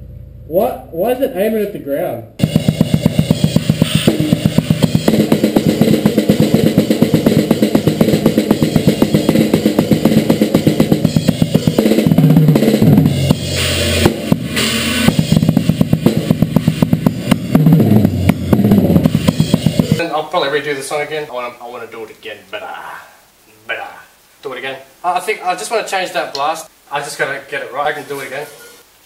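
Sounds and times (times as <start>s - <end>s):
tom fills: 0.0s - 20.1s
blast beat drumming: 2.4s - 20.0s
cymbal crash: 2.4s - 20.0s.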